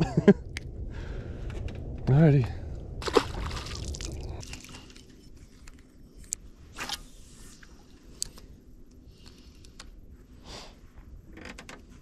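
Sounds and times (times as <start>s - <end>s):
fish splashing into water: 3.0s - 4.8s.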